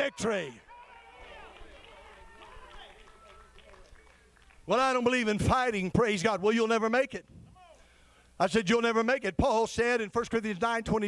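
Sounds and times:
congregation calling out: 0.0s - 3.6s.

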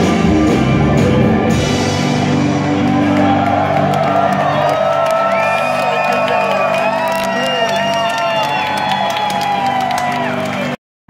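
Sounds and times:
psychedelic rock band playing: 0.0s - 10.4s
audience whooping and cheering: 2.5s - 10.8s.

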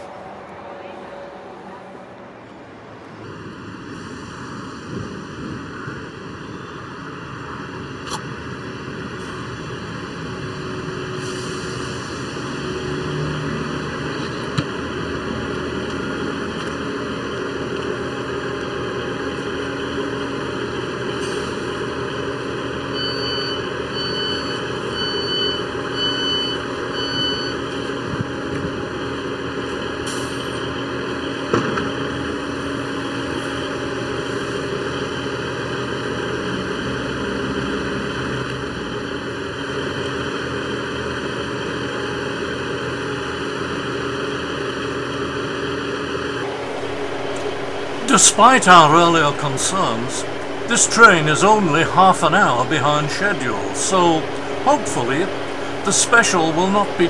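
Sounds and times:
train diesel engines running: 0.0s - 57.0s.

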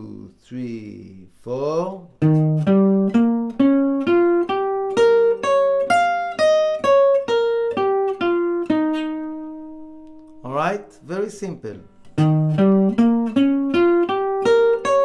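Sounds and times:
guitar picking arpeggio notes: 2.2s - 10.8s, 11.8s - 15.0s.

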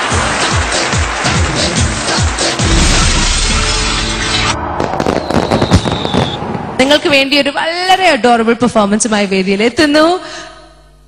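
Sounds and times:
fireworks cracks and bangs: 2.6s - 6.7s
thin high whistle: 5.0s - 6.4s.

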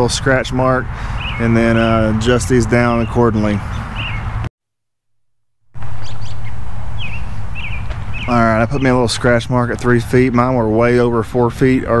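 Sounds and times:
small birds chirping: 0.9s - 4.5s, 5.8s - 9.8s.

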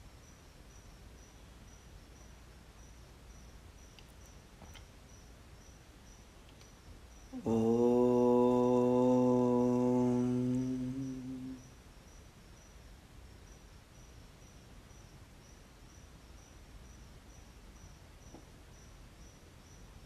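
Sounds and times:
crickets chirping: 0.0s - 20.0s
man chanting long note: 7.4s - 11.6s.

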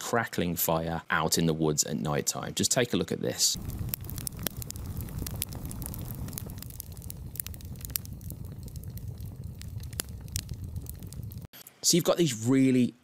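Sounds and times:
burning logs rumbling: 3.6s - 11.5s
campfire crackling: 3.6s - 11.5s
sharp pops and snaps: 3.6s - 11.6s.

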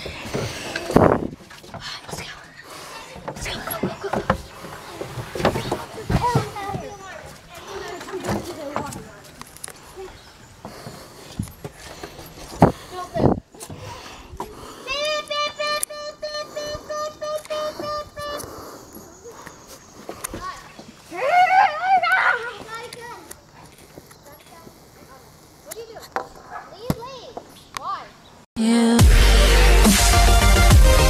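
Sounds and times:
children playing: 0.0s - 28.1s.

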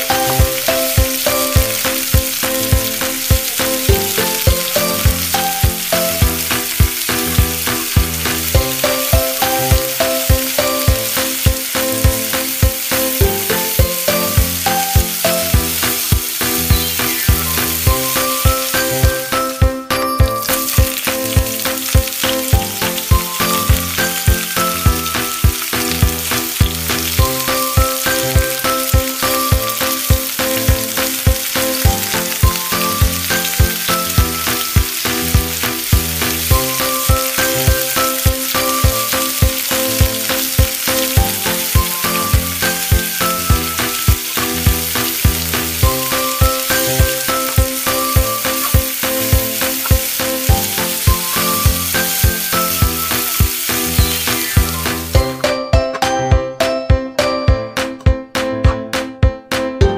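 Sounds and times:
vegetables sizzling in oil: 0.0s - 55.4s
background music with beat: 0.0s - 59.9s.

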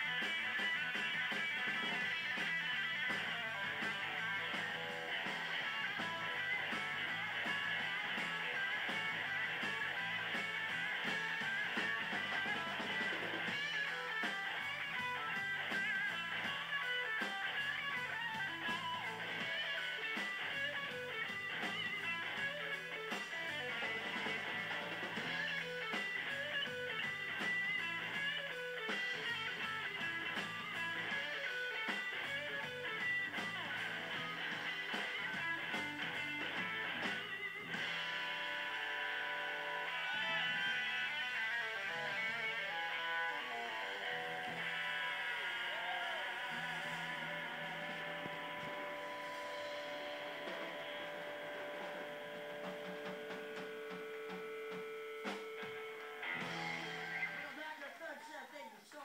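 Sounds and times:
electric guitar lead with bends: 0.0s - 57.6s
drums: 0.0s - 59.0s.

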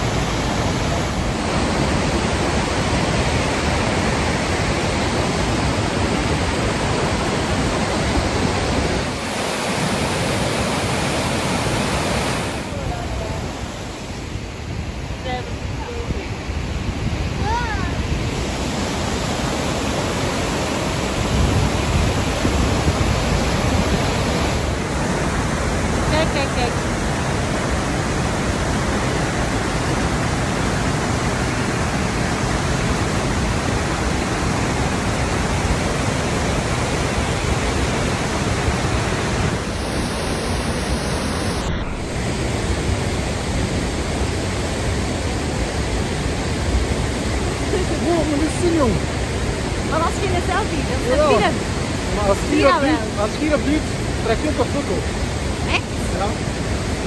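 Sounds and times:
waterfall roaring: 0.0s - 57.0s.

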